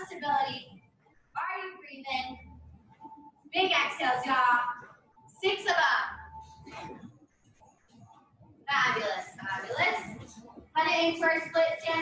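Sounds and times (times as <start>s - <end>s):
woman talking: 0.0s - 0.7s, 1.4s - 2.6s, 3.6s - 7.0s, 8.7s - 12.0s.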